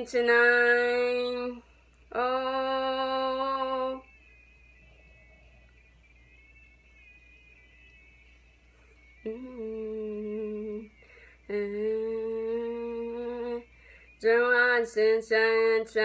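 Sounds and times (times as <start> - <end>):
person humming: 9.2 - 13.6.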